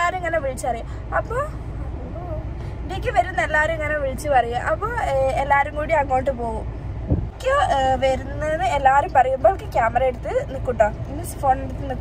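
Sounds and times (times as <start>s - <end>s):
car interior rumble: 0.0s - 12.0s.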